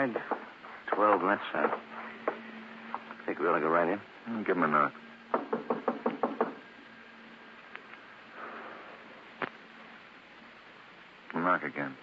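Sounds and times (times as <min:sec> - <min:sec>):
knocking on wooden door: 0:05.3 - 0:06.6.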